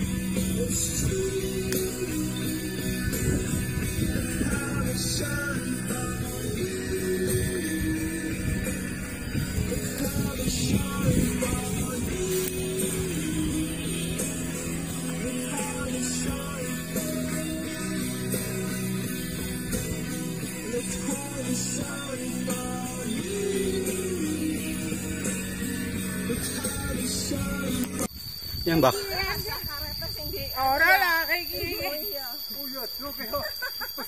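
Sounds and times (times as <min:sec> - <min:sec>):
song with guitar and singing: 0:00.0 - 0:28.1.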